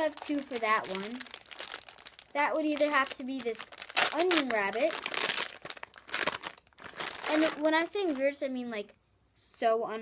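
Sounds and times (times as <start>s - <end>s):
crinkly packaging rustling: 0.0s - 8.5s.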